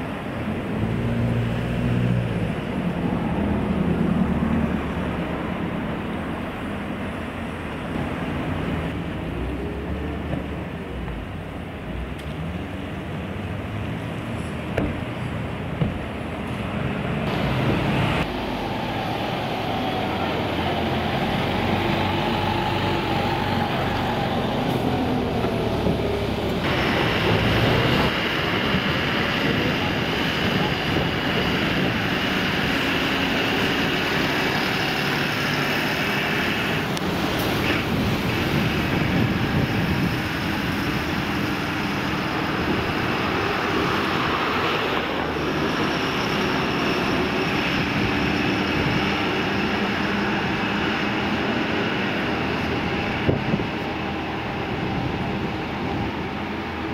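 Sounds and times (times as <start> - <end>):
lorry diesel engine running: 14.2 - 56.9.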